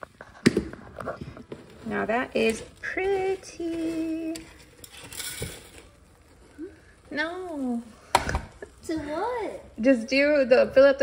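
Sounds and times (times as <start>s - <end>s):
spatula scraping in pot: 1.0s - 7.0s.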